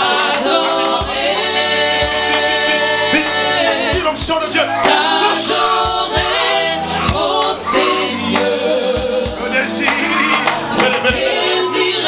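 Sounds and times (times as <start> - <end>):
band accompaniment with steady beat: 0.0 - 11.8
group singing gospel song: 0.0 - 12.0.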